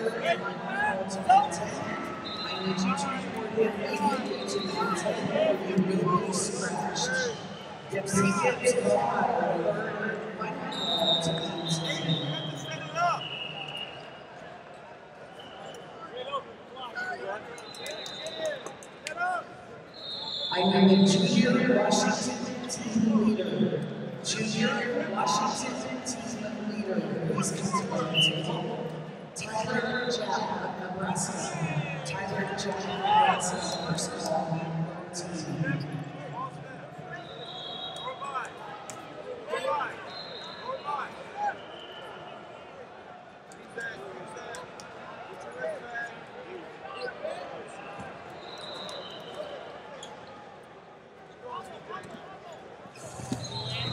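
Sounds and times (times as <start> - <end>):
arena hubbub and voices: 0.0 - 53.9.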